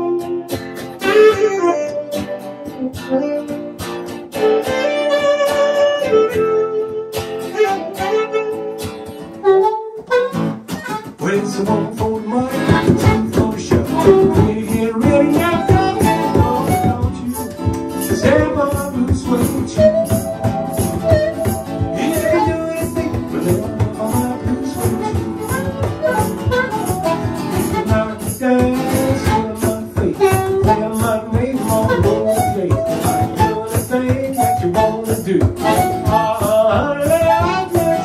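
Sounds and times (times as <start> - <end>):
harmonica: 0.0 - 38.0
strummed acoustic guitar: 0.0 - 38.0
keyboard: 12.5 - 38.0.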